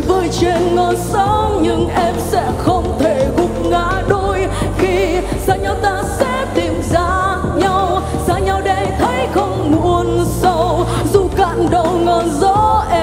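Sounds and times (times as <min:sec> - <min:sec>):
live band playing: 0:00.0 - 0:13.0
woman singing a pop ballad: 0:00.0 - 0:13.0.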